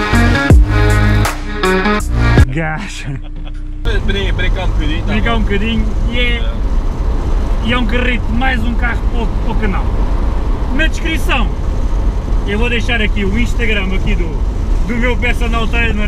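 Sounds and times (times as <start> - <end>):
car engine and road rumble: 0.0 - 16.0
people talking: 2.4 - 6.6, 7.6 - 9.9, 10.7 - 11.6, 12.5 - 16.0.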